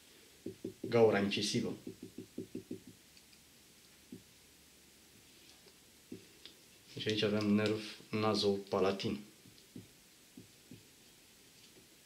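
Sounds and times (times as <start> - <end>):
marker tapping on whiteboard: 0.4 - 1.1, 1.7 - 3.0, 9.7 - 10.9.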